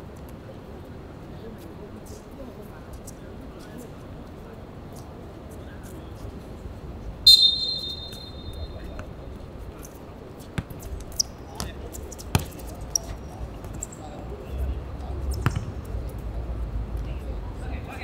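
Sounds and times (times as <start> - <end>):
referee's whistle blast: 7.3 - 8.9.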